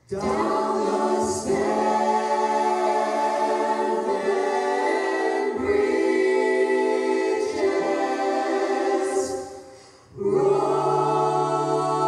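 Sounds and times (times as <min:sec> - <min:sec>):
vocal ensemble singing in harmony: 0:00.0 - 0:12.0.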